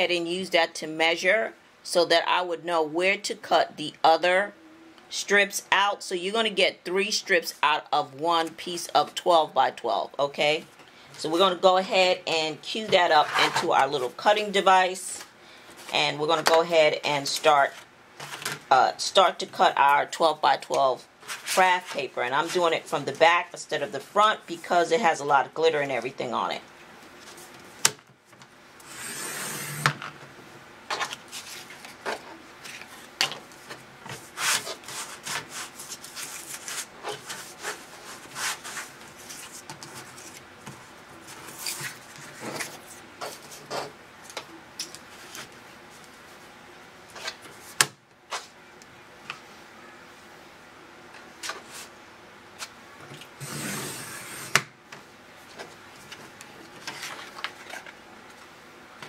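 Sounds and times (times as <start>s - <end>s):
paper rubbing and sliding: 21.2s - 22.6s, 34.2s - 40.4s.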